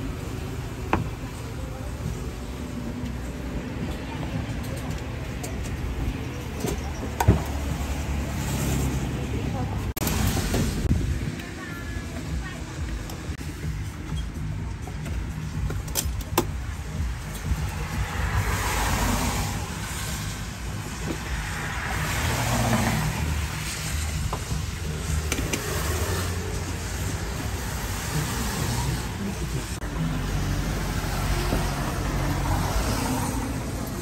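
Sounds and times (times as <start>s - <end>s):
cars passing: 0.0s - 34.0s
road traffic rumble: 0.0s - 34.0s.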